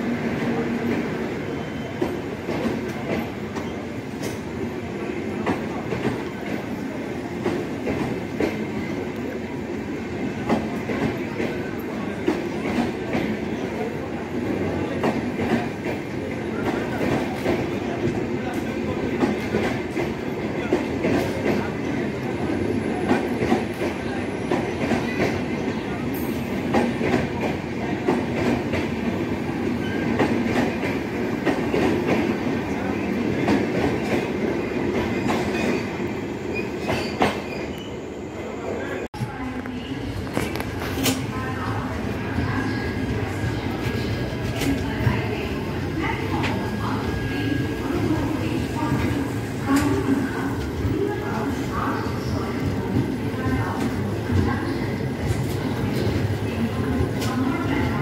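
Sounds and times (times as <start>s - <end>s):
train wheels rumbling on rails: 0.0s - 37.9s, 39.1s - 58.0s.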